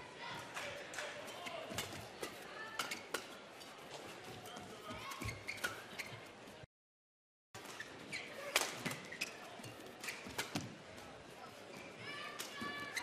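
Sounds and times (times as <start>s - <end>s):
shoes squeaking on court: 1.3s - 6.6s, 7.6s - 10.8s, 11.6s - 13.0s.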